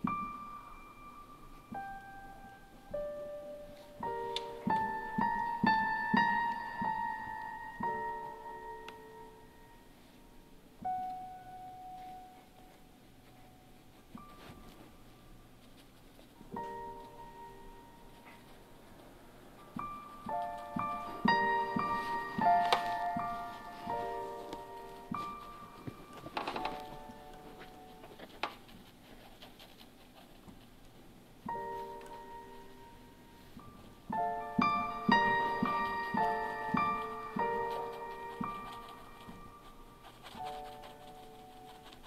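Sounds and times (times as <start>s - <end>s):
piano chords: 0.0s - 29.3s, 31.2s - 42.0s
high piano note ringing: 19.6s - 28.2s, 31.5s - 41.0s
pen scratching on paper: 27.5s - 30.8s, 36.3s - 42.0s.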